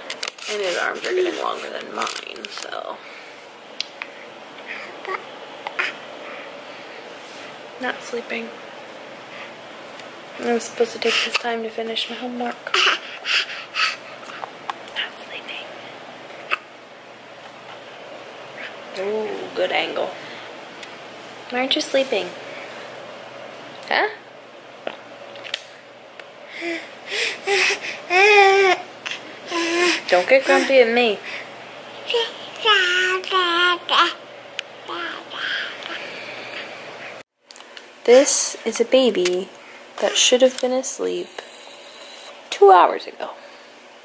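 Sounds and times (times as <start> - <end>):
baby crying aah: 26.6 - 28.9, 29.5 - 30.7.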